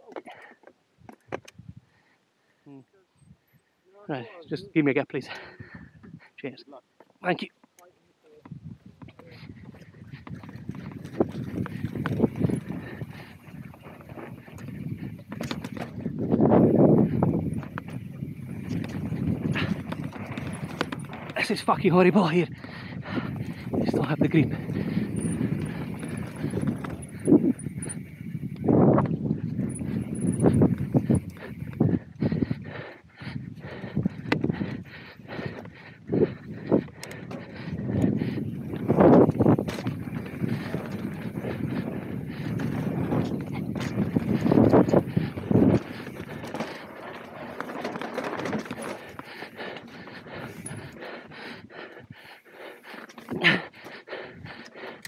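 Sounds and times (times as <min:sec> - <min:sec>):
bike tyres rumbling over dirt: 0:08.5 - 0:51.7
bike knocks and rattles: 0:10.3 - 0:16.5, 0:17.3 - 0:21.6, 0:38.7 - 0:50.7.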